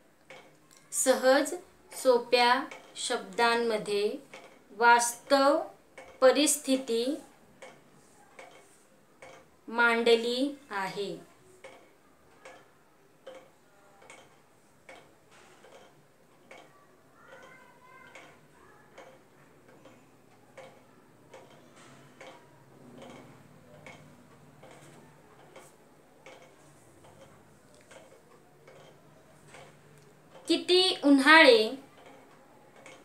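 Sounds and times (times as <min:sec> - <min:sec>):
faint regular ticking: 0:00.0 - 0:33.0.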